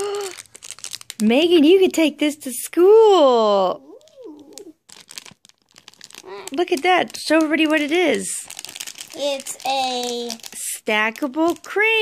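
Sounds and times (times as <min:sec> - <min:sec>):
plastic bag crinkling: 0:00.0 - 0:01.8, 0:03.8 - 0:12.0.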